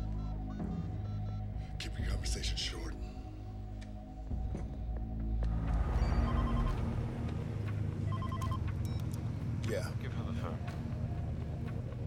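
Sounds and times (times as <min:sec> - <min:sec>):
low rumble: 0:00.8 - 0:12.0
phone ringing electronic trill: 0:06.0 - 0:06.8, 0:08.1 - 0:08.6.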